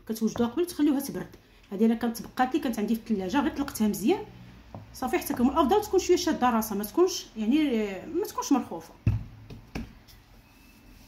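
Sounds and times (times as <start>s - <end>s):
knocks on kitchen table: 9.0s - 10.0s.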